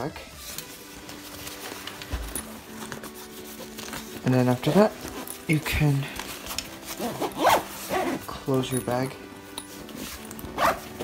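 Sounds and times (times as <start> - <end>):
faint background music: 0.0 - 11.0
backpack zipper being pulled: 6.4 - 8.3, 9.8 - 11.0.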